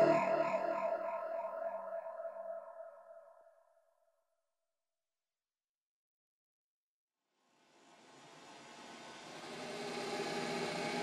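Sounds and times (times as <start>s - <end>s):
pulsing synthesizer chord: 0.0s - 2.9s.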